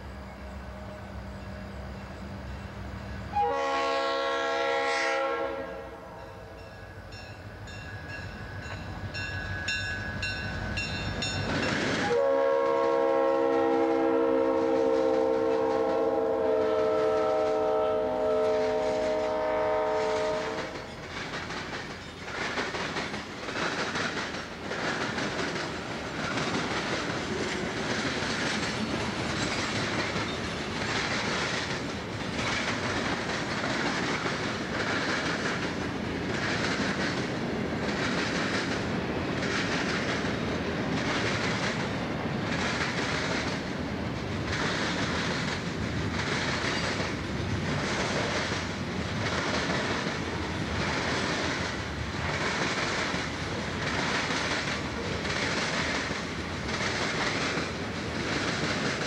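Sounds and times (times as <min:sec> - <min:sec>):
multi-tone train horn blast: 0:03.3 - 0:06.5, 0:12.0 - 0:20.8
diesel locomotive rumbling: 0:05.8 - 0:59.0
train cars clickety-clack: 0:06.6 - 0:59.0.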